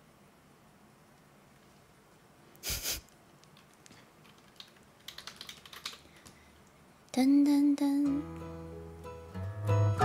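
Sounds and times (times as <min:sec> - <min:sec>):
computer keyboard typing: 0:03.4 - 0:06.3.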